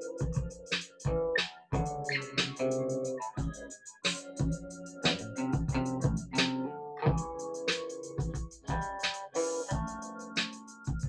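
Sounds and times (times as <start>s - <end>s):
electric guitar playing: 0.0s - 3.7s, 4.3s - 10.6s
drum machine beat: 0.0s - 11.0s
keyboards: 0.0s - 11.0s.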